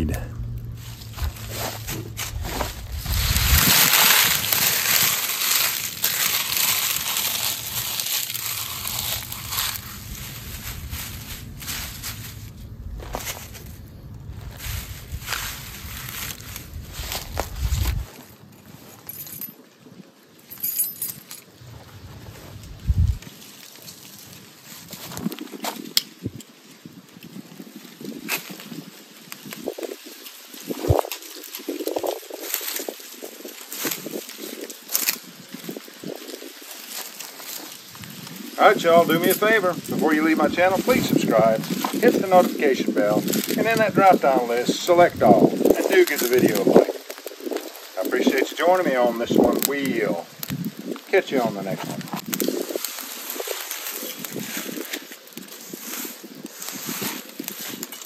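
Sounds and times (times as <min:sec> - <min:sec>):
dry leaves crinkling and crunching: 0:00.0 - 0:58.0.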